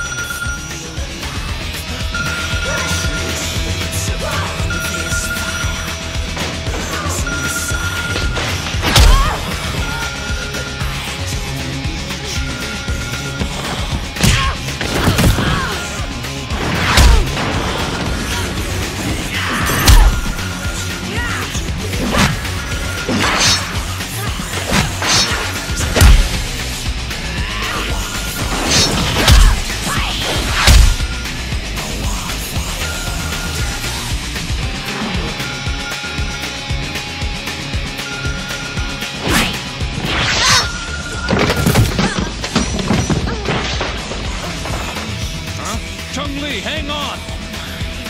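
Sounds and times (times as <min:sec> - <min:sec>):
dramatic music score: 0:00.0 - 0:48.0
fight crashes and blows: 0:14.2 - 0:20.4, 0:24.5 - 0:26.6, 0:28.4 - 0:31.1.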